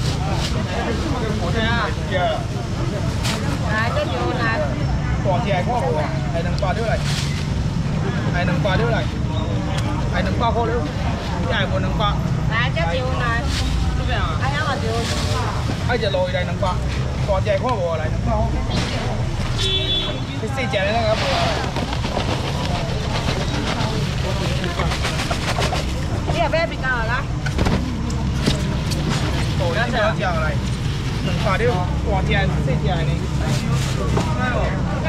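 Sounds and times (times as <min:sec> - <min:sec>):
crowd chatter: 0:00.0 - 0:35.0.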